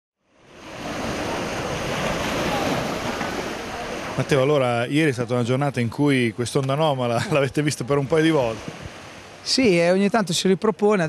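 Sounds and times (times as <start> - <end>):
small waves washing onto beach: 0.2 - 11.0.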